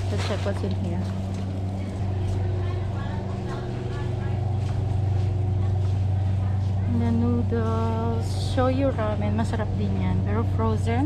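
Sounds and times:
faint voices of shoppers: 0.0 - 11.0
steady low hum: 0.0 - 11.0.

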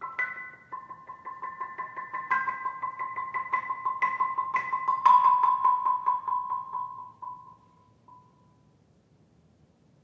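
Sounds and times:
marimba struck with mallets: 0.0 - 8.5.

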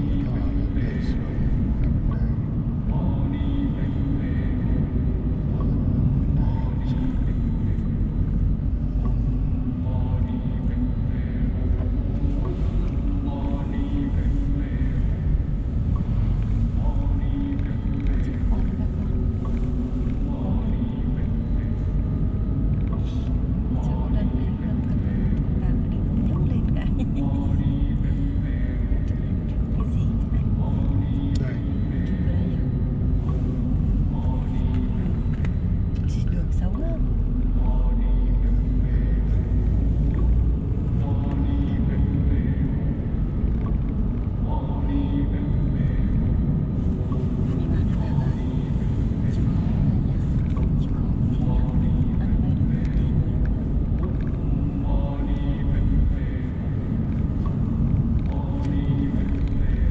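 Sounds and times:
people talking: 0.0 - 4.7, 5.4 - 7.9, 16.0 - 21.9, 23.0 - 32.7, 36.0 - 39.7, 47.0 - 53.7
car engine and road rumble: 0.0 - 59.9.

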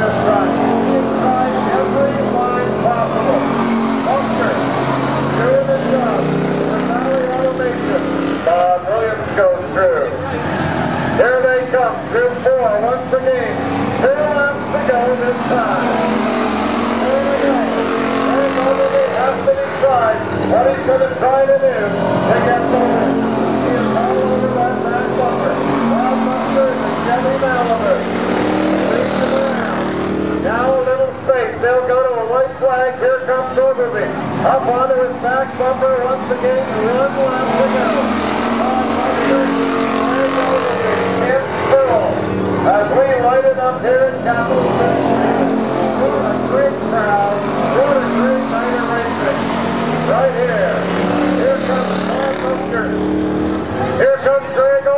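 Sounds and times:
race car engines running hard: 0.0 - 54.9
voices talking: 0.0 - 54.9.

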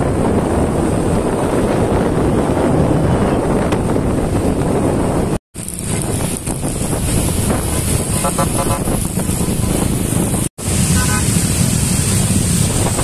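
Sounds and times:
motorcycle engines running: 0.0 - 13.0
wind rush on microphone: 0.0 - 13.0
short pulsing horn tone: 8.2 - 9.0.

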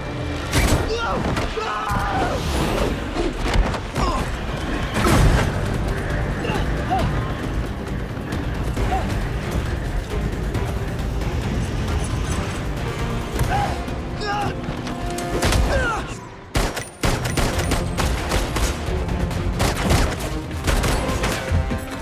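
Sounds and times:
film music score: 0.0 - 22.0.

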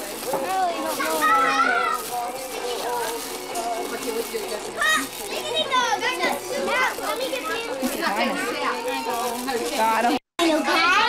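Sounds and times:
children calling and chattering: 0.0 - 11.0
quiet adult voices: 0.0 - 11.0.

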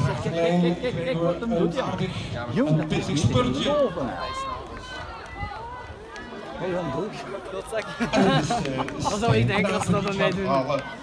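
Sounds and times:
spectators chattering and calling: 0.0 - 11.0.

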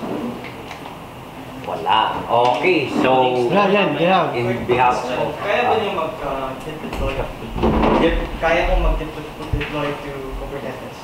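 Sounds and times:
indistinct voices talking: 3.1 - 11.0
low rumbling and thudding: 5.9 - 10.8.

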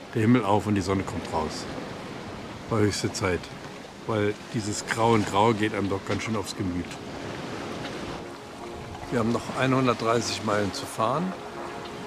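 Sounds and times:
sea water rushing: 0.0 - 12.0
wind: 0.0 - 12.0
faint music: 4.1 - 12.0.

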